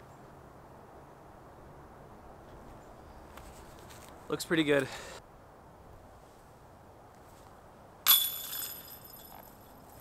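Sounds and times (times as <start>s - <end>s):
disc striking metal chains: 8.1s - 9.7s.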